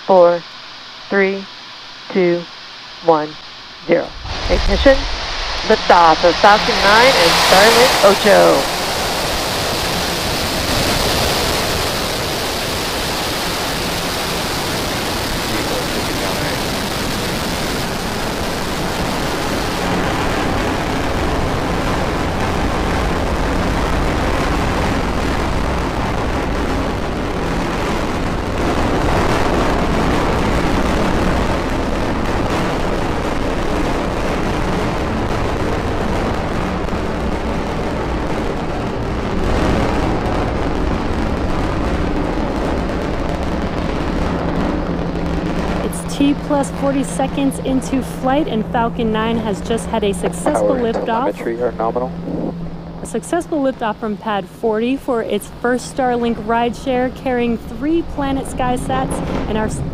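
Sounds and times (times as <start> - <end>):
deep rocket engine roar: 3.9 - 59.9.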